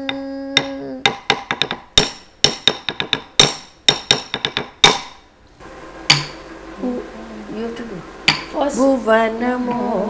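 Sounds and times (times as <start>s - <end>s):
metallic percussion strikes: 6.0s - 6.5s, 8.2s - 8.7s.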